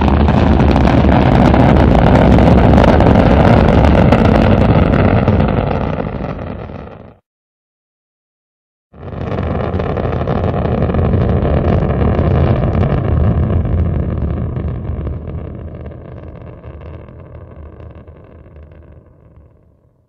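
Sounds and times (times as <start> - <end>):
rocket engine rumbling: 0.0 - 7.2, 9.0 - 19.8.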